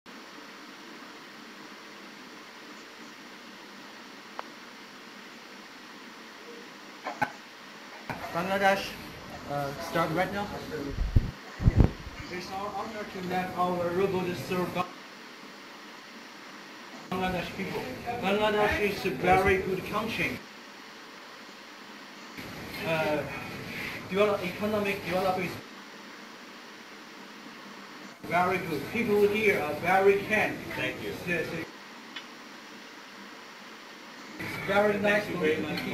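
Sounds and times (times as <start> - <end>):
room noise hiss: 0.1 - 35.9
faint click: 32.1 - 32.3.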